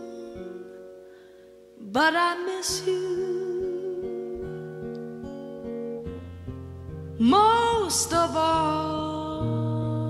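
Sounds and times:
person singing: 0:00.0 - 0:00.9, 0:01.8 - 0:05.0, 0:07.2 - 0:10.0
plucked acoustic guitar: 0:00.0 - 0:10.0.

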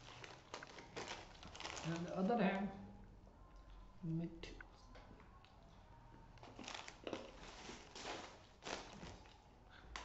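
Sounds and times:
plastic bags rustling: 0:00.0 - 0:02.6, 0:06.4 - 0:10.0.

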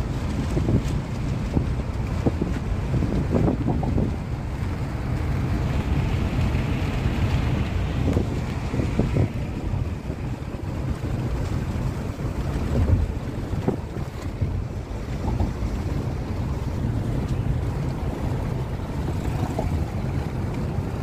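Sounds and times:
tyre and wind noise in car: 0:00.0 - 0:21.0.

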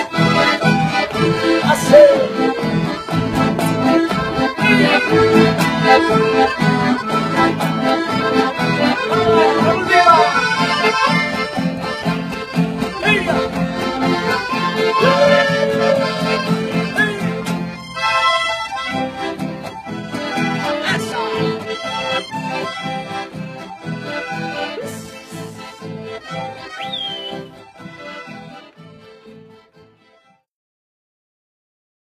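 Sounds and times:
accordion dance music: 0:00.0 - 0:30.5.

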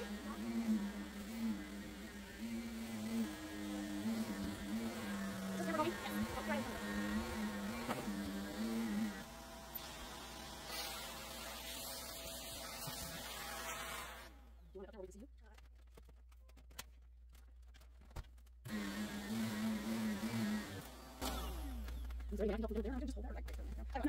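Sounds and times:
vacuum cleaner on carpet: 0:00.0 - 0:14.3, 0:18.7 - 0:22.4.

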